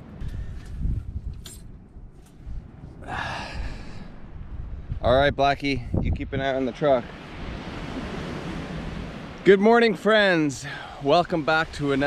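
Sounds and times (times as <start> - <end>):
ocean surf washing: 2.4 - 12.0.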